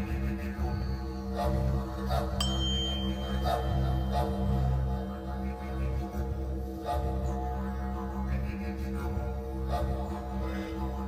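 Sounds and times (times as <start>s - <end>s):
low droning background music: 0.0s - 11.0s
tuning fork ringing: 2.4s - 6.8s.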